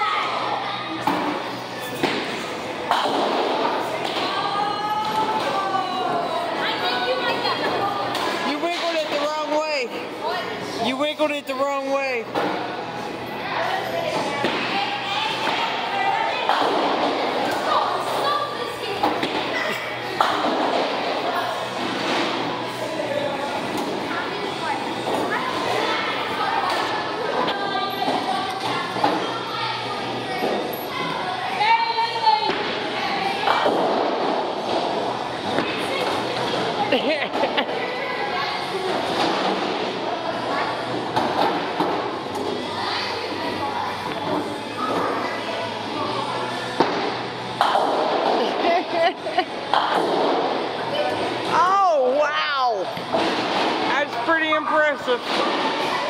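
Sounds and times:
voices chattering in a hall: 0:00.0 - 0:56.0.

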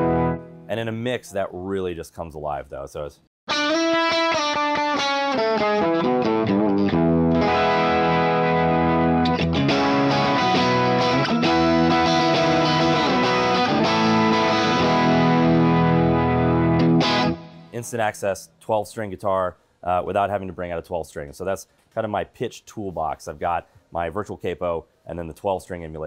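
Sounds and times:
electric guitar with twelve-string sound: 0:00.0 - 0:00.7, 0:03.5 - 0:17.8.

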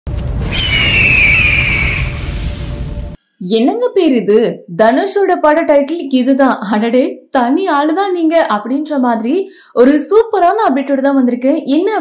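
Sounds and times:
low rumbling fiery whoosh: 0:00.0 - 0:03.2
eagle cry screech: 0:00.5 - 0:02.3.

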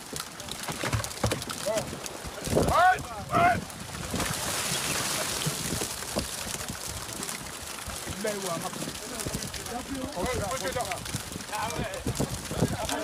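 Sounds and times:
knocks and thuds: 0:00.6 - 0:01.6
people talking: 0:01.6 - 0:03.6, 0:08.1 - 0:13.0.

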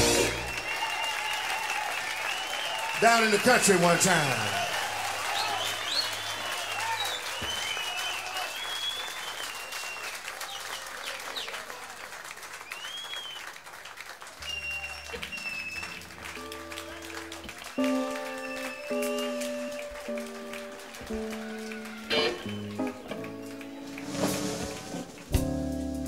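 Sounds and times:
bass and guitar notes: 0:00.0 - 0:00.5, 0:25.2 - 0:26.0
band playing blues: 0:00.0 - 0:00.7, 0:14.4 - 0:26.0
audience applauding: 0:00.0 - 0:25.6.

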